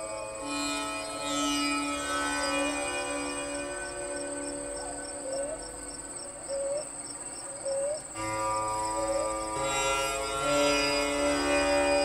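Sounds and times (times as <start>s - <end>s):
crickets chirring: 0.0s - 12.0s
faint music drone: 0.0s - 12.0s.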